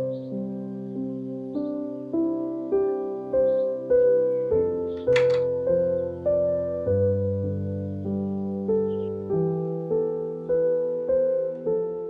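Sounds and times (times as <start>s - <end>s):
soft piano music: 0.0s - 12.0s.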